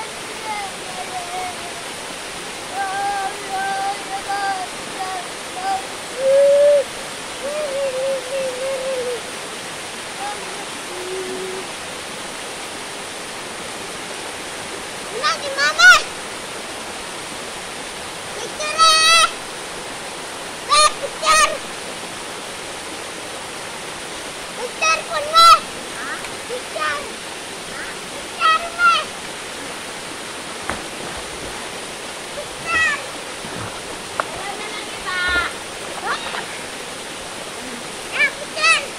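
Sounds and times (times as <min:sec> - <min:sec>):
waterfall pouring into pool: 0:13.8 - 0:38.9
high-pitched shouts: 0:20.7 - 0:21.6, 0:24.8 - 0:25.6, 0:32.4 - 0:33.1.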